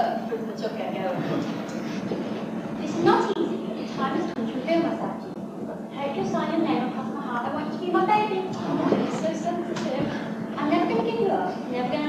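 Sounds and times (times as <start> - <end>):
tape hiss and hum: 0.0 - 12.0
girls speaking: 2.7 - 12.0.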